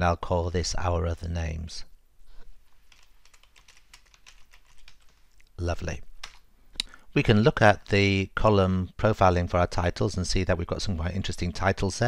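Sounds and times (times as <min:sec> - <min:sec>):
faint keyboard typing: 0:02.7 - 0:05.5, 0:06.2 - 0:06.9.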